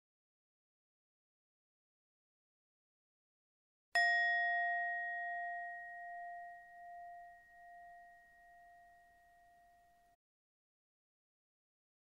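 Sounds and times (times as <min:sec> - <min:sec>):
meditation bell ringing: 0:04.0 - 0:10.2.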